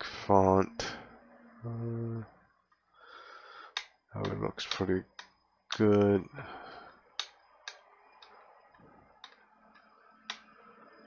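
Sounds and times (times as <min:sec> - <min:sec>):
computer mouse clicks: 0:07.2 - 0:10.5.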